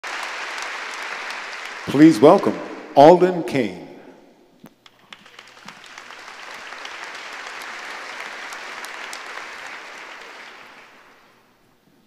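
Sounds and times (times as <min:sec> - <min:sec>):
audience applauding: 0:00.0 - 0:03.2, 0:04.8 - 0:11.6
man speaking: 0:01.9 - 0:04.2.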